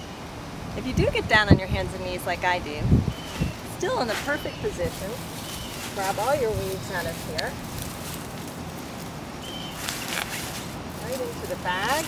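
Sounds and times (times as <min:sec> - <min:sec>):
leaves rustling and crackling: 0:00.0 - 0:12.0.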